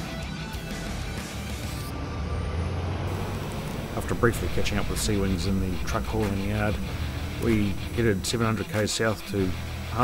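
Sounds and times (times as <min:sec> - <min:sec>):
background music: 0:00.0 - 0:10.0
street traffic: 0:01.2 - 0:10.0
truck engine rumbling: 0:01.9 - 0:10.0.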